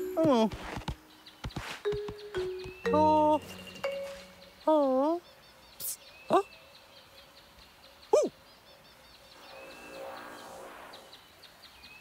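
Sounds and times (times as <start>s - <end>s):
high chirps: 1.8s - 4.9s.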